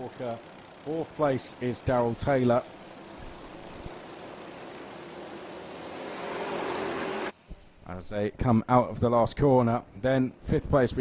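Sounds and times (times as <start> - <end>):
racing kart engines: 0.0 - 7.4.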